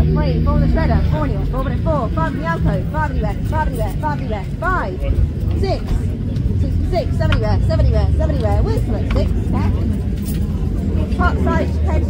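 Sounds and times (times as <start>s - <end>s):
auctioneer calling bids: 0.0s - 10.0s
loud low rumble: 0.0s - 12.0s.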